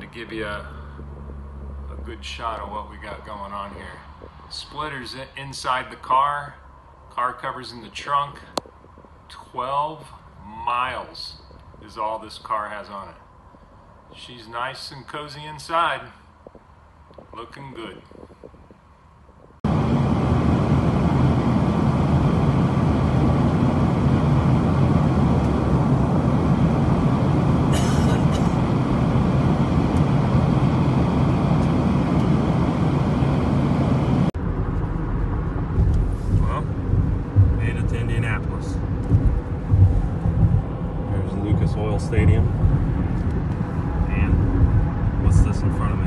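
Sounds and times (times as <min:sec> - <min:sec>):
car tyres and engine rumble: 0:00.0 - 0:46.0
aircraft cabin noise: 0:16.5 - 0:46.0.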